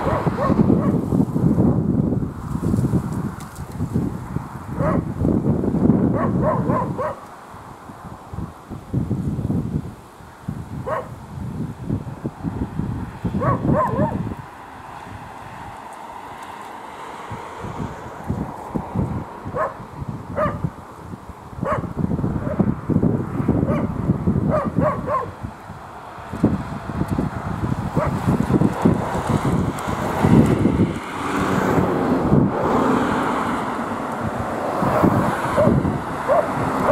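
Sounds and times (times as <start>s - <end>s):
dog barking: 0.0s - 1.0s, 4.8s - 5.1s, 6.1s - 7.2s, 10.8s - 11.2s, 13.4s - 14.2s, 19.5s - 19.8s, 20.4s - 20.6s, 21.6s - 22.6s, 23.6s - 25.4s, 28.0s - 28.2s, 34.9s - 36.9s.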